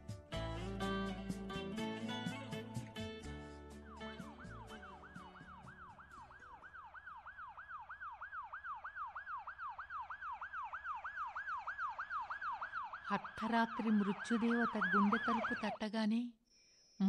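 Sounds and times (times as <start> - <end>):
music: 0.0 - 6.2
ambulance siren wailing: 3.8 - 15.8.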